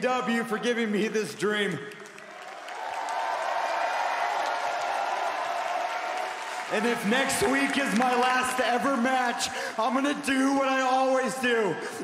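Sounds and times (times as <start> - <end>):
arena crowd cheering and applauding: 0.7 - 11.7.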